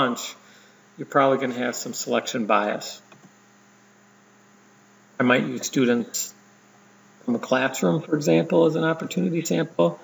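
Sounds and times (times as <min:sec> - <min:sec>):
faint electrical hum: 0:00.0 - 0:10.0
low hiss: 0:00.0 - 0:10.0.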